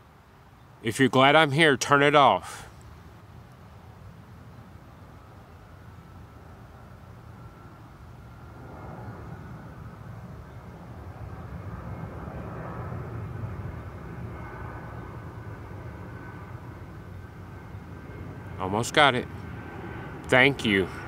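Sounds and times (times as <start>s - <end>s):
distant engine rumble: 0.9s - 21.0s.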